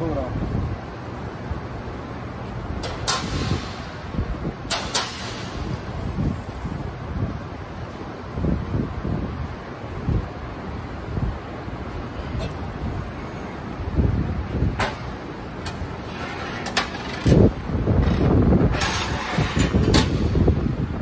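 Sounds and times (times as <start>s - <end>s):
shop background noise: 14.6s - 20.3s.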